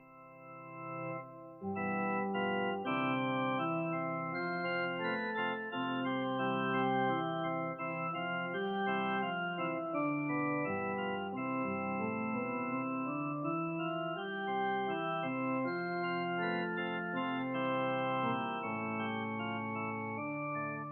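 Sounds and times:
organ playing chords: 0:00.0 - 0:20.9.

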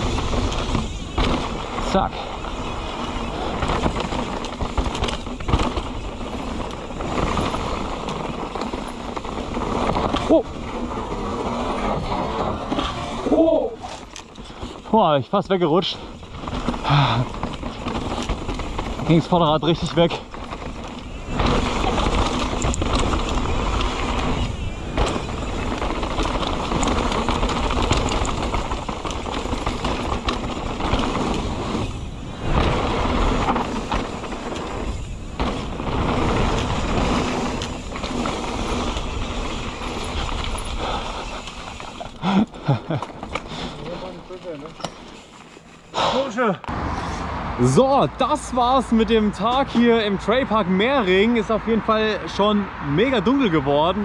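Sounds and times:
tyres rolling over dirt and stones: 0:00.0 - 0:46.6
bike knocking and rattling: 0:00.0 - 0:46.7.

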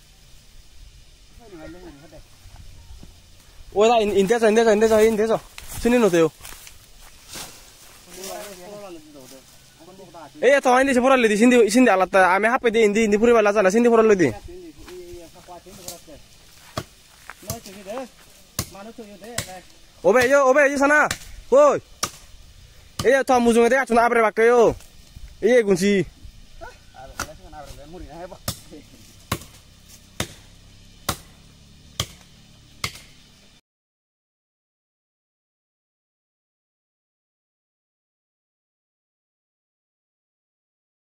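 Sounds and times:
blade striking tree trunk: 0:16.6 - 0:17.8, 0:18.5 - 0:21.4, 0:22.0 - 0:23.2, 0:27.1 - 0:27.4, 0:28.4 - 0:33.4.

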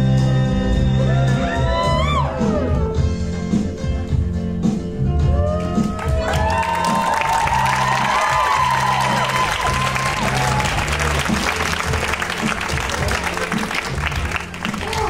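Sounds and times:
dance music sliding melody: 0:00.6 - 0:15.0
audience applauding: 0:05.5 - 0:15.0.

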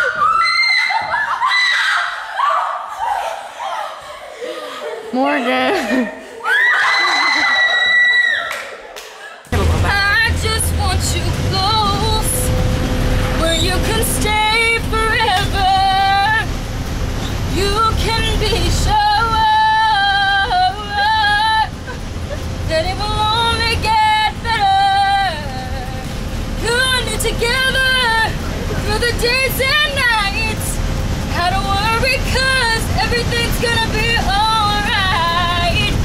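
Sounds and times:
bus engine rumble: 0:09.5 - 0:36.0
road noise: 0:09.5 - 0:36.0.

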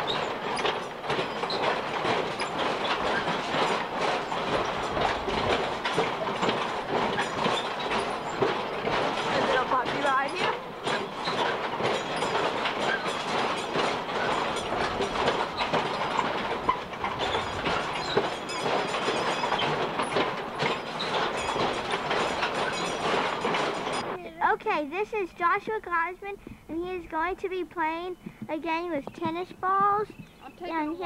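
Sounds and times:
kiddie ride rattling and clacking: 0:00.0 - 0:31.0
children's voices: 0:24.1 - 0:31.0.

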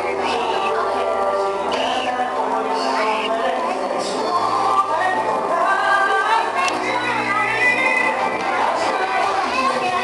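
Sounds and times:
children chattering and calling out: 0:00.0 - 0:10.0
pop music: 0:00.0 - 0:10.0.

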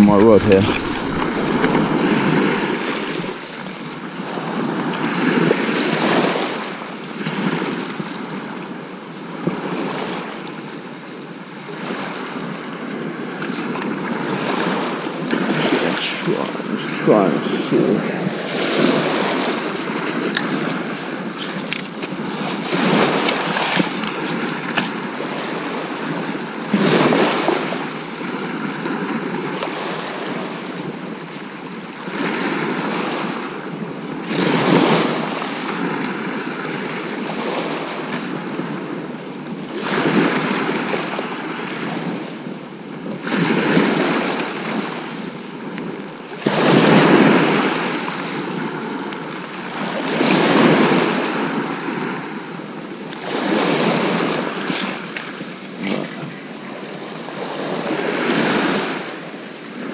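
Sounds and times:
sea waves breaking on beach: 0:00.0 - 0:59.9.

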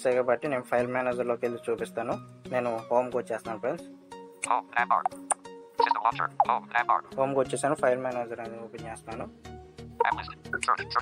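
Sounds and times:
background music with held notes: 0:00.0 - 0:11.0
synthetic screen reader voice: 0:10.0 - 0:11.0.

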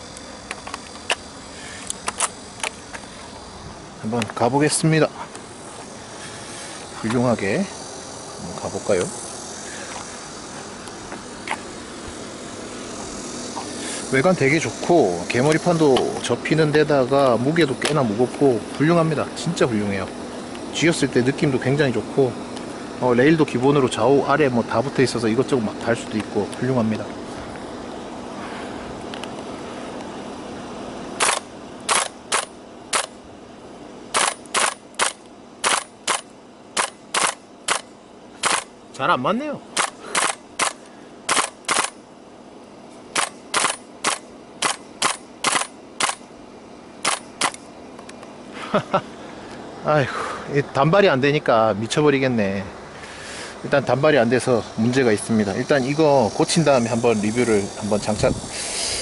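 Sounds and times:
airsoft rifle shots: 0:31.2 - 0:33.2, 0:34.1 - 0:38.7, 0:39.8 - 0:42.0, 0:43.1 - 0:46.2, 0:47.0 - 0:47.6.

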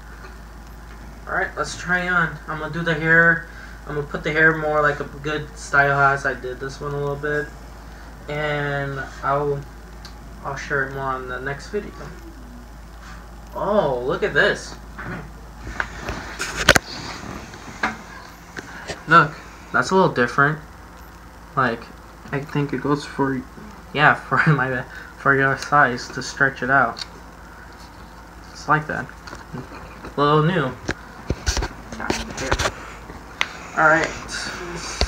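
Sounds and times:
rubber mask rubbing and rustling: 0:15.6 - 0:18.6.

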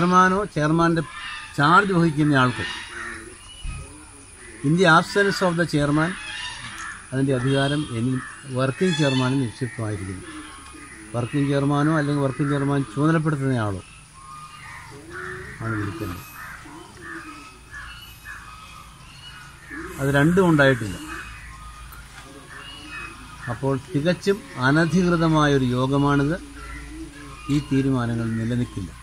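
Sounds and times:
man talking: 0:07.1 - 0:10.3, 0:11.1 - 0:13.8, 0:15.6 - 0:16.2, 0:19.9 - 0:21.1, 0:23.4 - 0:26.5, 0:27.2 - 0:29.0
man speaking: 0:19.9 - 0:21.1, 0:23.4 - 0:26.5, 0:27.2 - 0:29.0.

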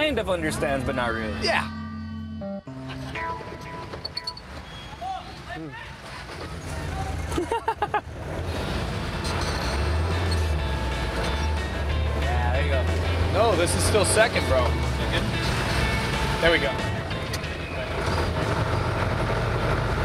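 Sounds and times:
background music: 0:00.0 - 0:04.6, 0:09.7 - 0:18.6
engine low drone: 0:08.2 - 0:20.0.

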